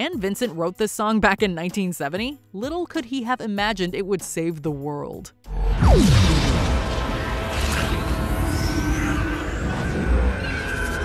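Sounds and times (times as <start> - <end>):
action movie music score: 5.4 - 11.0
loud rumbling energy effect: 5.5 - 11.0
short rising whine: 5.5 - 11.0.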